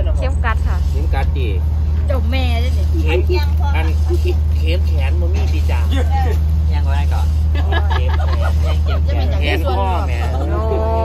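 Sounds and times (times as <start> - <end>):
women talking: 2.0 - 4.3, 8.2 - 11.0.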